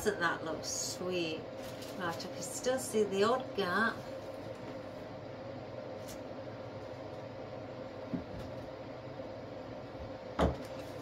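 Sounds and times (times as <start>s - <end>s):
steady hum: 0.0s - 11.0s
knocks on a worktable: 10.4s - 10.7s.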